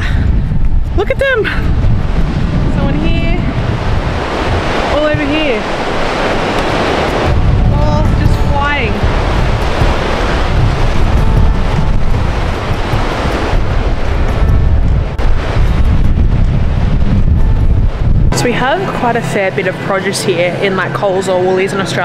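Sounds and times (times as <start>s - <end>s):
wind noise on microphone: 0.0s - 21.9s
ocean surf breaking: 0.0s - 22.0s.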